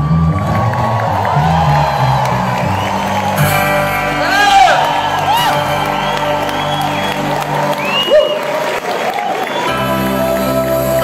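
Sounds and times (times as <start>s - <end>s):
crowd cheering and whistling: 0.0s - 11.0s
band chords ringing: 2.5s - 8.1s.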